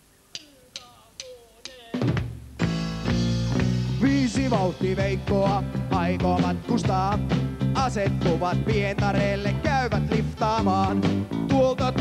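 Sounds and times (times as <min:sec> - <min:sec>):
drumsticks clicking together: 0:00.3 - 0:01.9.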